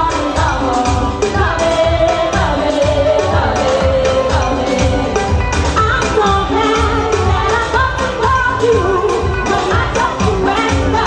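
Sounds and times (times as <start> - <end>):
live backing music: 0.0 - 11.0
woman singing into a microphone: 0.0 - 11.0.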